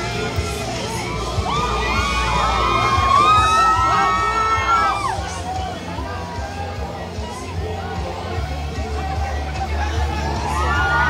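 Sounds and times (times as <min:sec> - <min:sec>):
crowd shouting and cheering: 0:00.0 - 0:11.0
music from sound system: 0:00.0 - 0:11.0.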